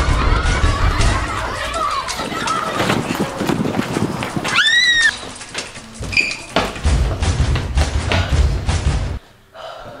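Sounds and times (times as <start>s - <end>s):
children running scuffling: 0.8s - 8.4s
child shrieking: 4.5s - 5.1s.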